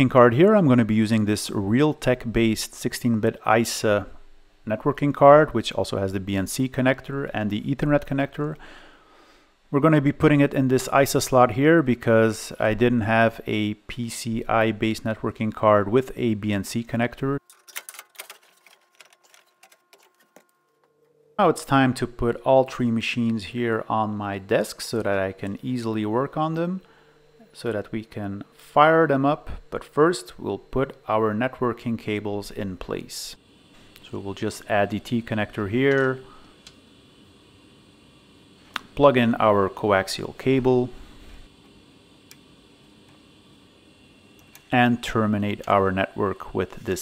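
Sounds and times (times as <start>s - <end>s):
low hiss: 21.4s - 47.0s.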